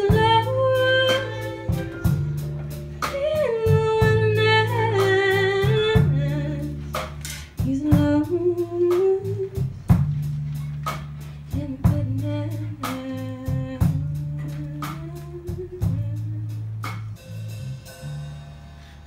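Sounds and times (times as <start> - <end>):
woman singing: 0.0 - 2.1, 3.0 - 7.0, 7.6 - 9.7, 11.5 - 16.6
low bass line: 0.0 - 19.0.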